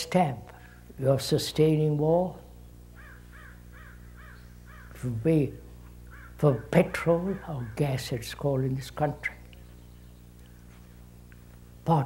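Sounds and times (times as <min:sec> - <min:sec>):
low steady hum: 0:00.0 - 0:12.0
faint bird calls: 0:02.9 - 0:05.2, 0:06.0 - 0:08.2.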